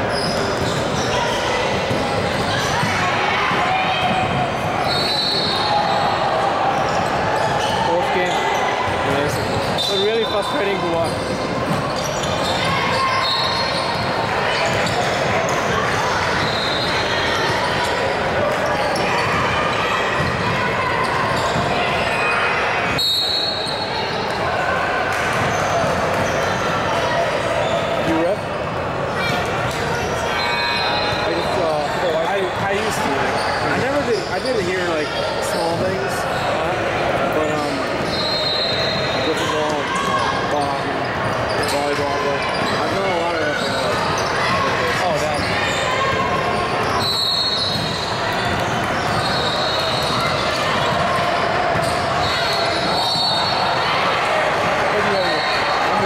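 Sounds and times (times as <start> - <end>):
sneakers squeaking: 0.0 - 53.9.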